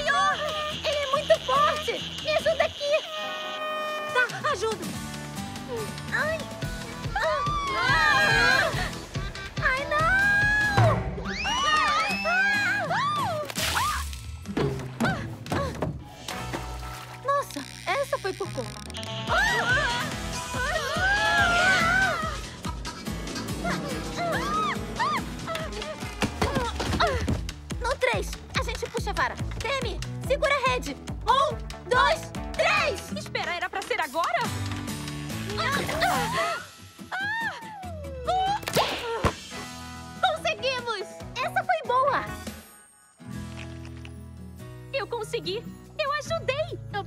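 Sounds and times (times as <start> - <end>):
playful cartoon music: 0.0 - 47.0.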